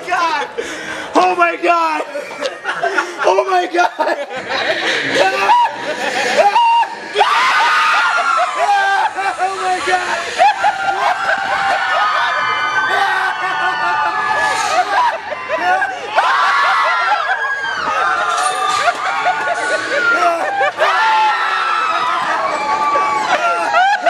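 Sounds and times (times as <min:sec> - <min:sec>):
people screaming on a ride: 0:04.9 - 0:24.0.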